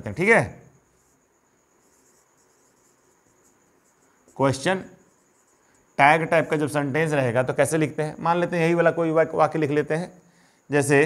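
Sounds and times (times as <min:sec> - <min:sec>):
marker pen scratching on whiteboard: 0:00.9 - 0:05.9.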